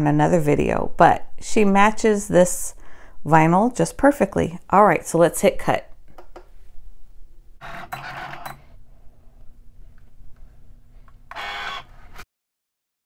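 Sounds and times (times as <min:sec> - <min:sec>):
faint steady machine hum: 0:00.0 - 0:12.2
cutting machine motor whirring: 0:07.6 - 0:08.6, 0:11.1 - 0:12.2.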